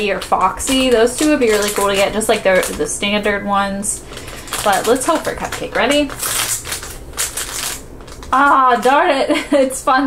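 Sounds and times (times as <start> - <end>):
plastic foil bag crinkling: 0.0 - 9.2.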